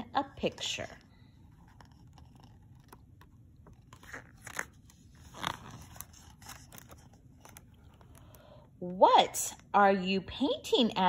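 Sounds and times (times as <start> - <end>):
paper page turning: 1.0 - 8.5.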